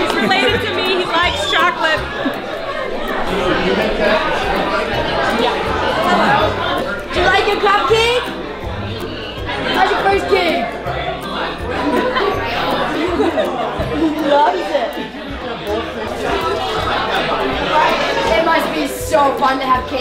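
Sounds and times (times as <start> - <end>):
background music with bass: 0.0 - 14.3
crowd chatting: 0.0 - 20.0.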